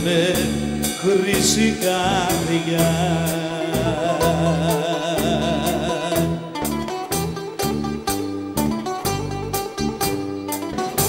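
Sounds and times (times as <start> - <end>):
bouzouki plucked melody: 0.0 - 11.0
drums: 0.0 - 11.0
electric bass: 0.0 - 11.0.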